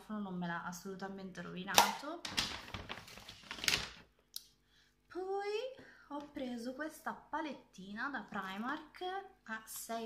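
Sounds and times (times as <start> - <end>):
items rustling and clicking: 1.8 - 4.2.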